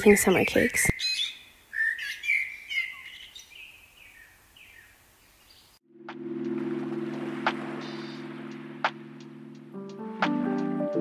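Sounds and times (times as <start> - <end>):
small birds chirping: 0.0 - 5.8
music with low chord and ticks: 5.9 - 11.0.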